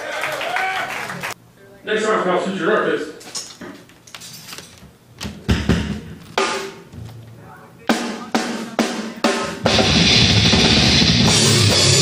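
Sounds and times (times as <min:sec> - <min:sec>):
drum hits with cymbal crashes: 0:05.5 - 0:06.9, 0:07.9 - 0:12.0
metal band playing: 0:07.8 - 0:12.0.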